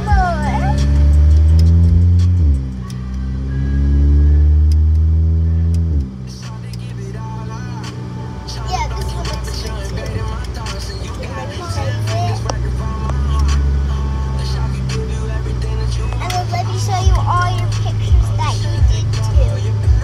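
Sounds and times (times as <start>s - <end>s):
car engine accelerating: 0.0s - 20.0s.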